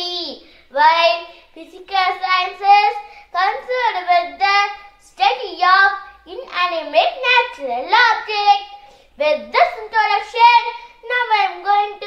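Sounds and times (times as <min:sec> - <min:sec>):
boy speaking emphatically: 0:00.0 - 0:12.0.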